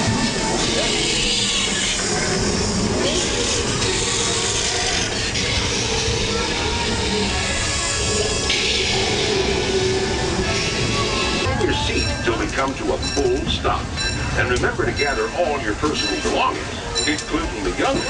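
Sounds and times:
train cars running on rails: 0.0s - 18.0s.

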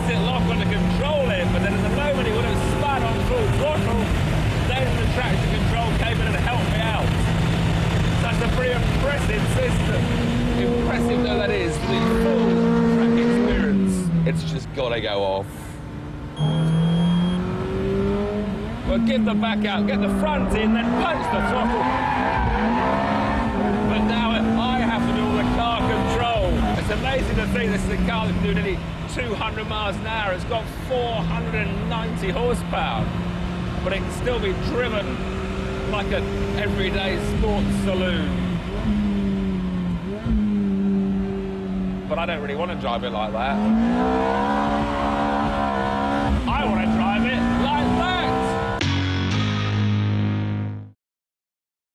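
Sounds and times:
car engine at full throttle: 0.0s - 50.8s
electric guitar music: 48.7s - 50.9s.

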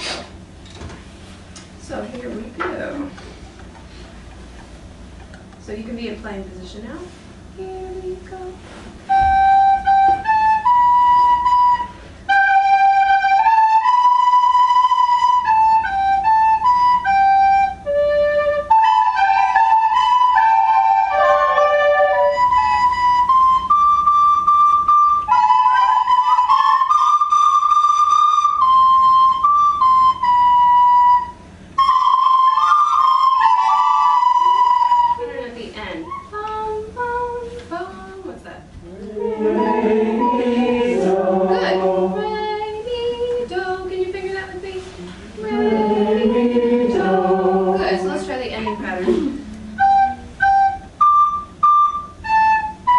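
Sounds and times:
voices singing sliding pitches: 7.6s - 38.2s, 38.8s - 52.9s
recorders playing melodic patterns: 9.1s - 35.5s, 45.4s - 52.9s.

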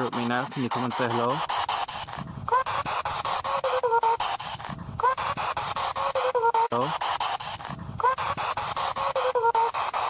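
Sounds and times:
radio static bursts: 0.0s - 10.0s
high pitched voice or tone: 2.5s - 4.3s, 8.0s - 9.9s.

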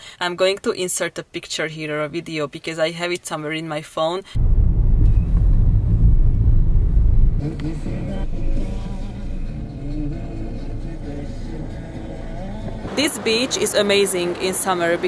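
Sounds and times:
car rumbling through tunnel: 4.4s - 15.0s.

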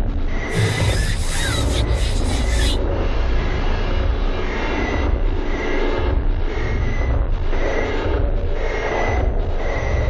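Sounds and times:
hissing noise: 0.5s - 2.8s.

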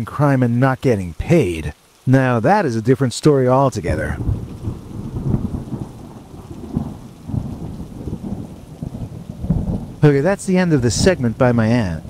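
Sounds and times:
low rumble of thunder: 4.0s - 12.0s.

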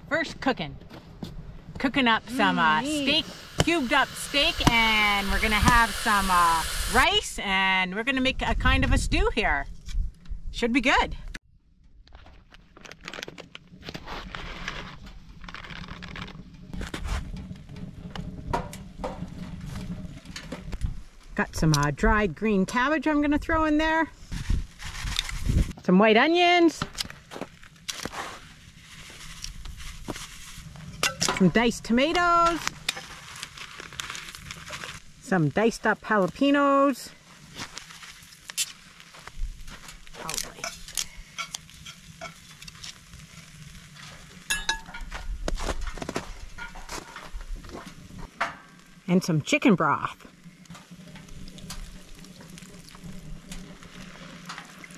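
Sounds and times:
food sizzling in a pot: 2.3s - 7.4s, 37.3s - 45.7s.

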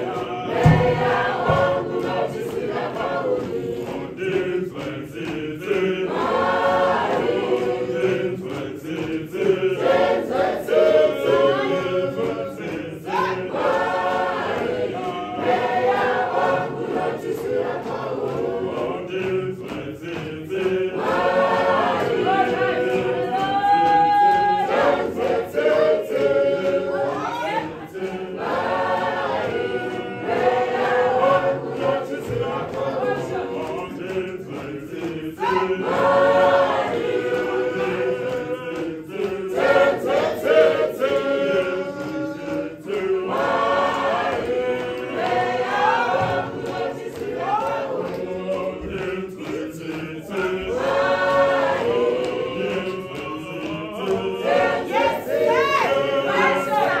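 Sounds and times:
church choir singing: 0.0s - 57.0s.

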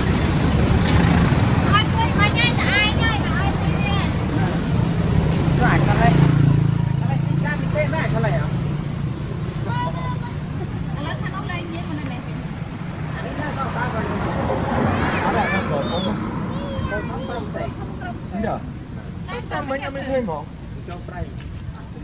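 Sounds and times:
vehicle engine running: 0.0s - 16.4s
distant voices: 0.0s - 22.0s.

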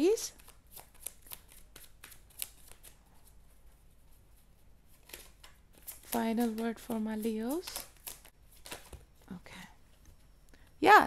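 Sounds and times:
card deck being shuffled: 0.4s - 3.0s, 4.9s - 9.0s.

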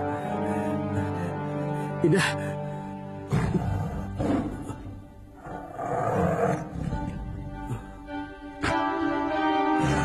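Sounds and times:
dramatic background music: 0.0s - 10.0s
tiger roaring: 5.4s - 7.2s.

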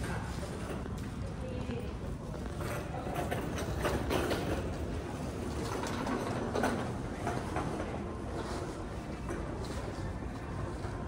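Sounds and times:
cart casters rolling rumble: 0.0s - 11.0s.

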